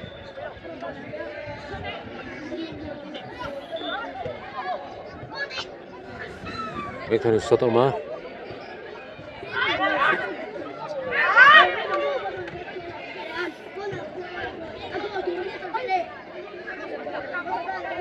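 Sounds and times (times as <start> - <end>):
background chatter: 0.0 - 18.0
people shouting: 11.0 - 12.3.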